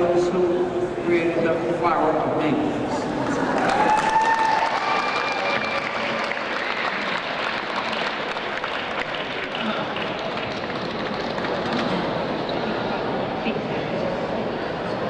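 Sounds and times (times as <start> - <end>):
audience applauding: 3.3 - 12.4.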